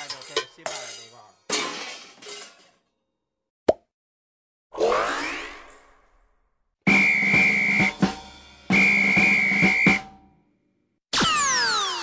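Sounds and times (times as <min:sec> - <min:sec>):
held whistle notes: 0:06.9 - 0:08.0, 0:08.7 - 0:10.0
drum hits: 0:06.9 - 0:10.3.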